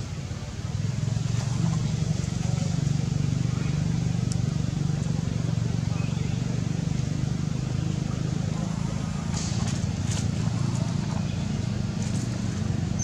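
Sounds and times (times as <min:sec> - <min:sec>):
engine humming: 0:00.0 - 0:13.0.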